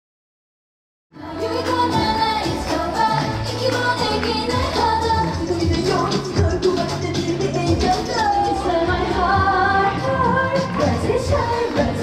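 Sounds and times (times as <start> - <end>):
female voices singing: 1.2 - 12.0
pop backing music: 1.2 - 12.0.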